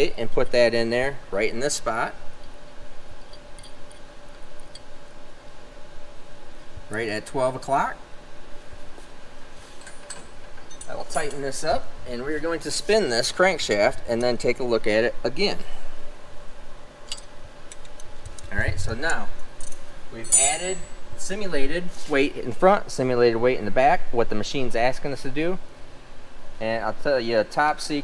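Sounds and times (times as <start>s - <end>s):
steady hum: 0.0s - 28.0s.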